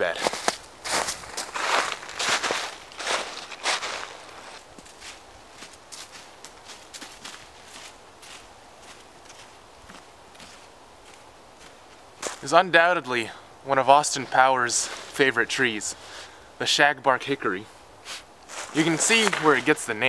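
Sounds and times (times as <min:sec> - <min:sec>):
footsteps crunching through snow: 0:00.1 - 0:12.5, 0:14.2 - 0:15.2, 0:18.0 - 0:20.0.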